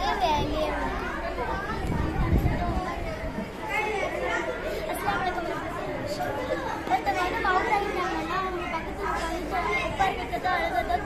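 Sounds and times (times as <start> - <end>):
chatter of overlapping voices: 0.0 - 11.0.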